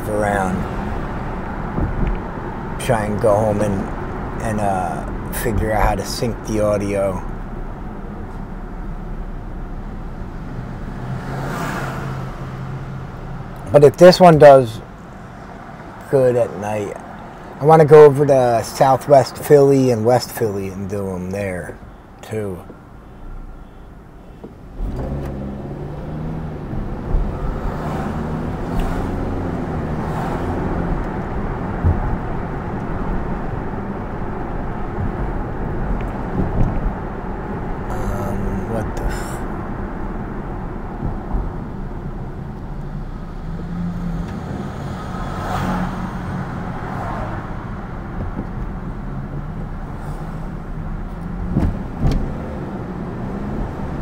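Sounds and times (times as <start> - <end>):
car engine accelerating: 0.0 - 17.5, 24.6 - 54.0
road noise inside car: 0.0 - 54.0.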